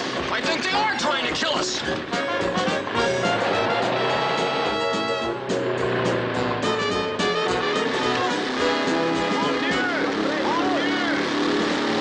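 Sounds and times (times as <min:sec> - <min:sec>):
car engine: 0:00.0 - 0:12.0
film music: 0:00.0 - 0:12.0.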